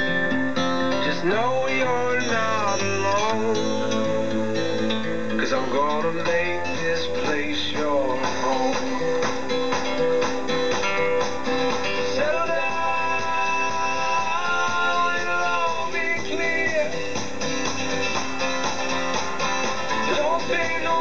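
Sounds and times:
folk-pop song from radio speaker: 0.0 - 21.0.

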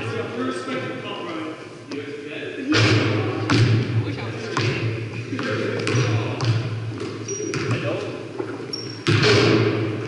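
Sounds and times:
basketballs bouncing on hardwood floor: 2.8 - 10.0.

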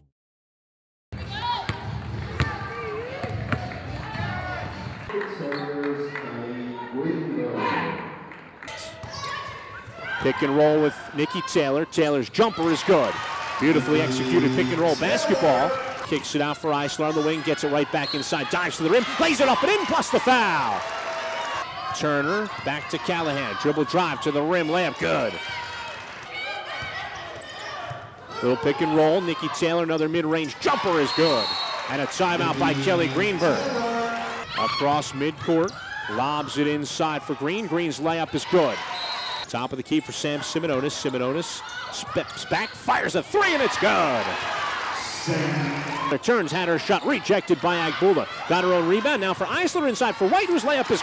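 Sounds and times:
players calling out: 8.8 - 25.8, 26.9 - 36.4, 41.1 - 51.0
people shouting together: 13.6 - 16.0, 32.3 - 34.8.

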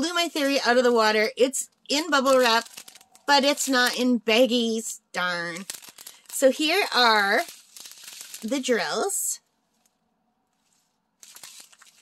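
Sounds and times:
plastic packaging crinkling: 1.8 - 4.1, 5.2 - 9.1, 10.6 - 12.0.

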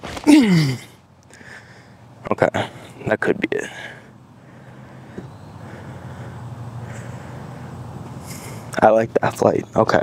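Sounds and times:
distant road traffic: 0.0 - 10.0.

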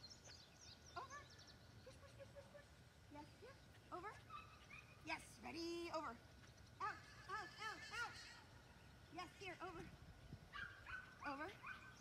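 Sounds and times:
small dog yipping: 4.2 - 5.0, 10.5 - 12.0.

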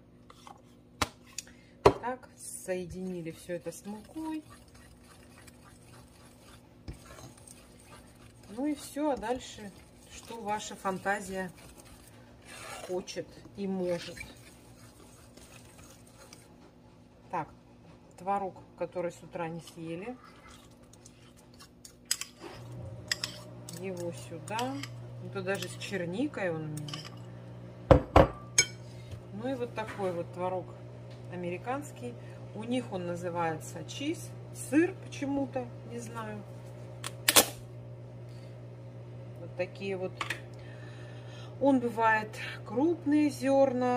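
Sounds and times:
fork scraping ceramic bowl: 3.0 - 13.2, 13.8 - 16.5, 20.2 - 25.8
washing machine humming: 22.5 - 43.9
kitchenware knocking on ceramic bowl: 27.9 - 28.4.

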